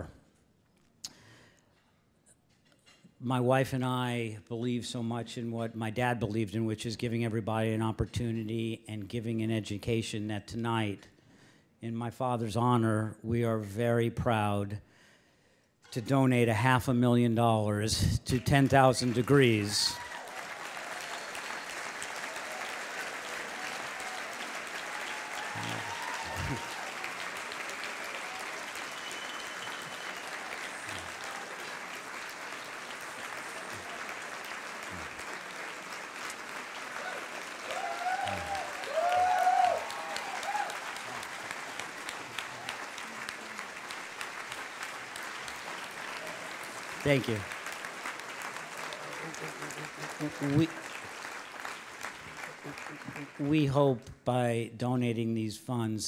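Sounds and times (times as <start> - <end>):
audience applauding: 18.3 - 53.8.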